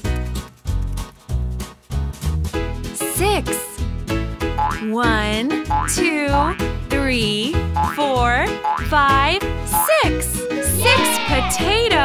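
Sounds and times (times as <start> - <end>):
children's music with steady beat: 0.0 - 12.0.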